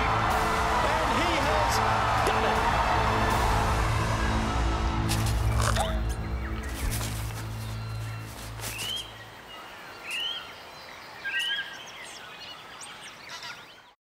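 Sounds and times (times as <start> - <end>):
faint outdoor ambience: 0.0 - 14.0
bird chirps: 5.4 - 14.0.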